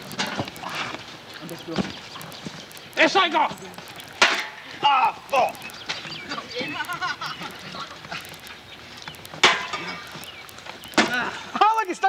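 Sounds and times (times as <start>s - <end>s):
people shouting: 4.4s - 8.2s.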